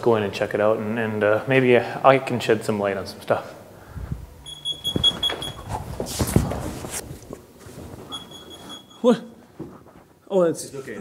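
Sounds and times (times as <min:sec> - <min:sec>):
high-pitched electronic alarm beeps: 0:04.4 - 0:05.7, 0:08.1 - 0:09.1.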